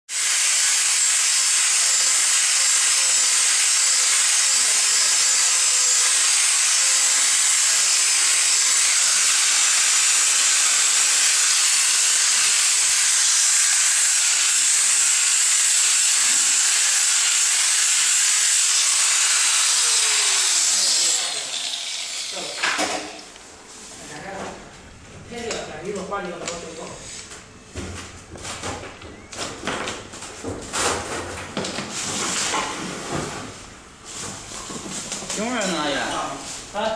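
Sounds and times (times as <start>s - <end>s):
angle grinder high hiss: 0.1s - 23.2s.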